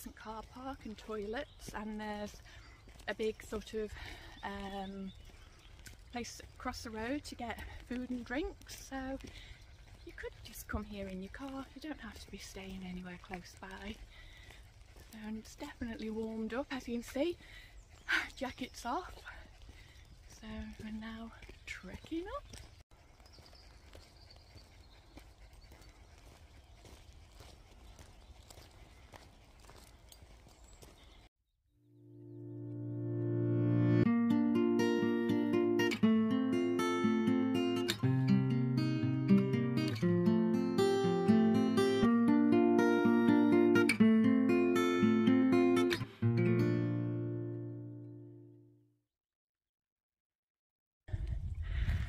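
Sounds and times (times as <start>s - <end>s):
plucked guitar tune: 32.1s - 48.5s.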